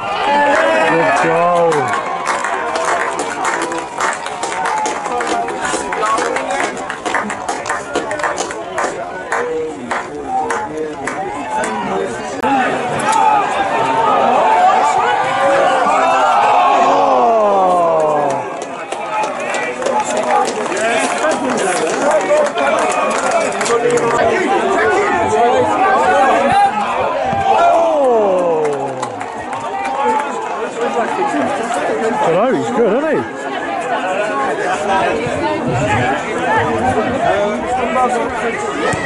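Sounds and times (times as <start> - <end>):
crowd chatter: 0.0 - 39.0
long falling shout: 13.2 - 18.5, 27.4 - 29.2.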